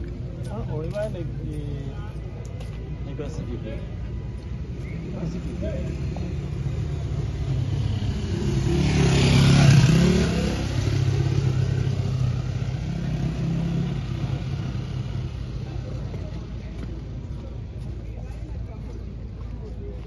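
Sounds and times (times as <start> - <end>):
vehicle engine passing: 4.9 - 16.8.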